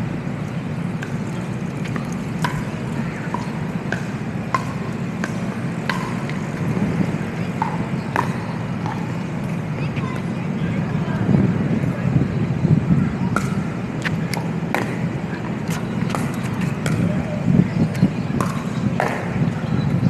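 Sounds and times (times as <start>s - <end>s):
low hum of city traffic: 0.0s - 20.0s
paddles hitting plastic ball: 1.8s - 6.7s.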